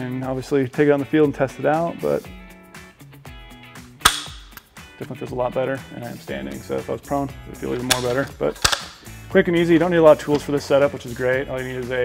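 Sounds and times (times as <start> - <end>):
guitar music: 0.8 - 12.0
rifle trigger click: 4.0 - 4.7, 7.9 - 9.0.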